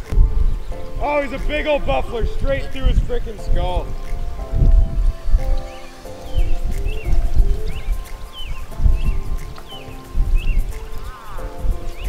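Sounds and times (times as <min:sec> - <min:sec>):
music with held notes: 0:00.0 - 0:12.0
wind gusts on microphone: 0:00.0 - 0:12.0.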